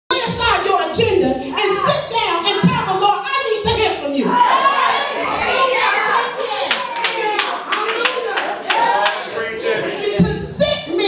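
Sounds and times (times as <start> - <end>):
voices calling out: 0.1 - 11.0.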